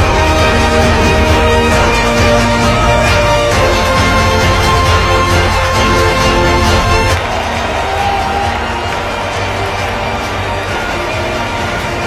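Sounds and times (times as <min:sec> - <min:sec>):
music playing: 0:00.0 - 0:12.0
stadium crowd voices: 0:00.0 - 0:12.0.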